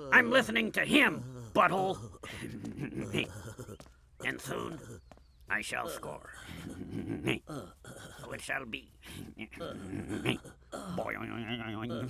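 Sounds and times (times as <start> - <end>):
cartoon character vocal sounds: 0.0 - 5.0, 5.9 - 12.0.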